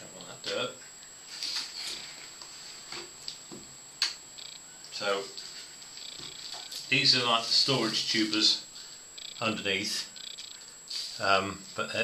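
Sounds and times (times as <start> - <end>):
soft rustles: 1.2 - 3.2.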